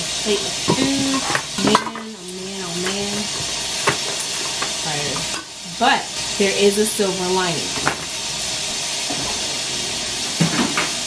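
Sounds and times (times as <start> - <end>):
steady hiss: 0.0 - 11.0.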